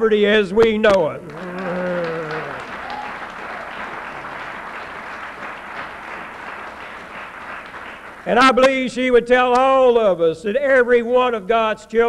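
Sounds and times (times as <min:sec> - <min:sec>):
audience applauding: 0:01.2 - 0:08.8.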